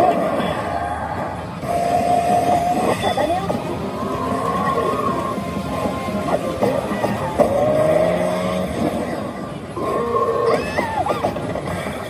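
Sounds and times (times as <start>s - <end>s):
electronic tones and rising glide: 0.0s - 12.0s.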